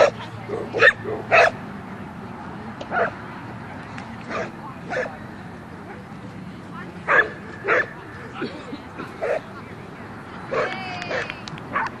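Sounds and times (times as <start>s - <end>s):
dog barking: 0.0s - 1.6s, 7.1s - 7.9s.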